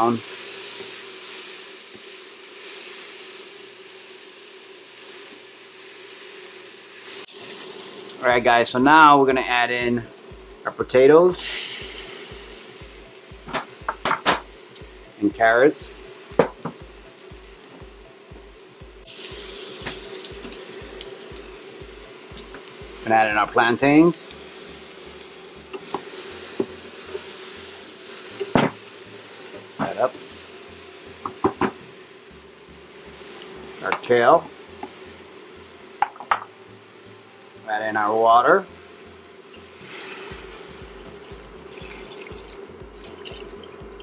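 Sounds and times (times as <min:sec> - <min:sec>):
vegetables sizzling in a pot: 0:00.0 - 0:44.0
faint background music with low beat: 0:07.3 - 0:44.0
steady low hum: 0:08.1 - 0:44.0.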